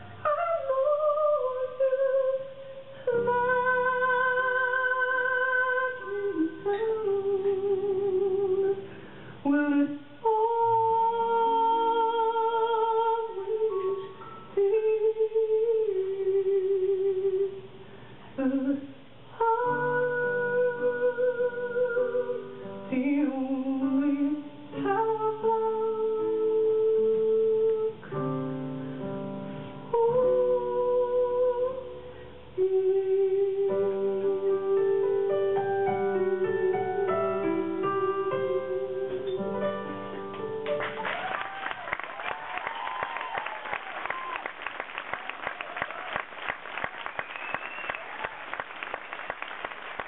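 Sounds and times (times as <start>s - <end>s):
woman singing long note with vibrato: 0.0s - 8.8s, 9.4s - 17.7s, 18.4s - 28.2s, 29.9s - 39.6s
sustained piano: 0.0s - 42.2s.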